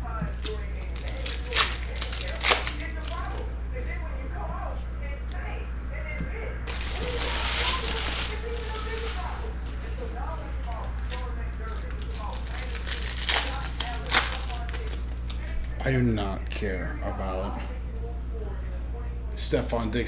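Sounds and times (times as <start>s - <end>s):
steady low hum: 0.0s - 20.0s
cards being handled: 0.3s - 3.4s, 6.7s - 15.8s
foil wrappers crinkling: 0.3s - 3.4s, 6.7s - 15.5s
sharp crackles: 0.4s - 3.2s, 6.7s - 9.5s, 10.9s - 15.4s.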